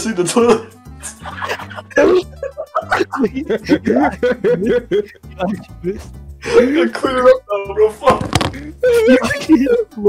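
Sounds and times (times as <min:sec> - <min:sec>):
people laughing over voice chat: 0:01.0 - 0:06.0, 0:08.9 - 0:09.8.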